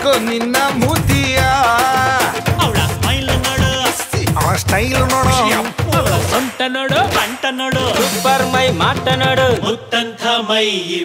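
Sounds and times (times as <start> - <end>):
person singing with bending pitch: 0.7 - 11.0
sparse musical backing: 1.0 - 5.5.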